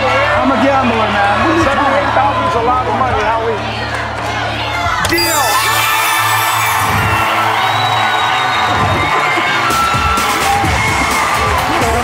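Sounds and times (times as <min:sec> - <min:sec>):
crowd cheering and whooping: 0:05.1 - 0:12.0
game show music: 0:05.1 - 0:12.0.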